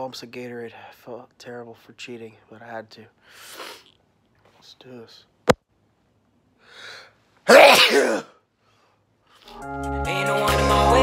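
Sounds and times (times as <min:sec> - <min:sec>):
faint breath in: 0:06.6 - 0:07.2
man sneezing loudly: 0:07.4 - 0:08.4.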